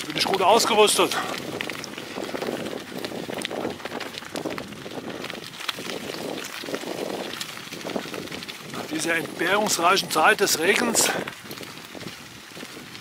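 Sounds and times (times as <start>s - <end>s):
bicycle tyres rolling on gravel: 0.0s - 13.0s
small clicks and rattles: 0.0s - 13.0s.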